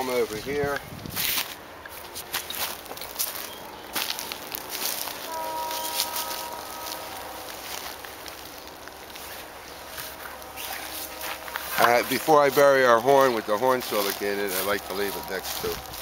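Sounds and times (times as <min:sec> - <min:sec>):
footsteps crunching on straw: 0:00.0 - 0:16.0
steady held chord: 0:01.6 - 0:16.0.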